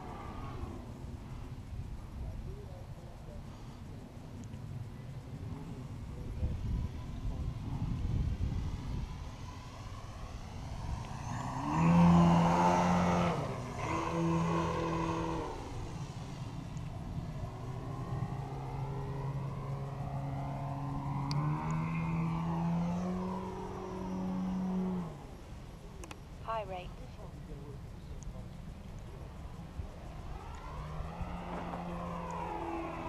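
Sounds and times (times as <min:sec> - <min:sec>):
model plane engine flying overhead: 0:00.0 - 0:33.0.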